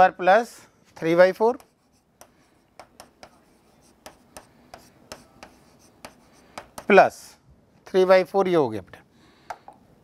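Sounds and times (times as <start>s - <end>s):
faint stylus scratching: 1.5s - 6.7s.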